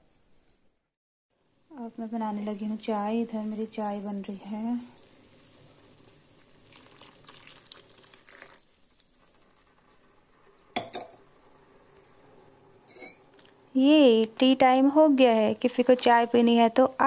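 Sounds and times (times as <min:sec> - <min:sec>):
tea boiling in a saucepan: 0:01.4 - 0:17.0
milk pouring: 0:05.0 - 0:12.0.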